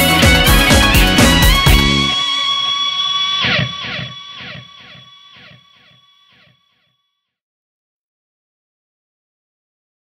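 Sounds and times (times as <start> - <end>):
electric guitar notes ringing: 0.0 - 6.6.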